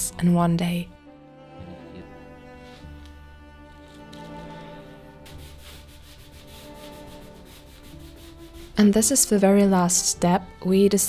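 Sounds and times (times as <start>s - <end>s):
rubbing on wooden frame: 3.7s - 9.3s.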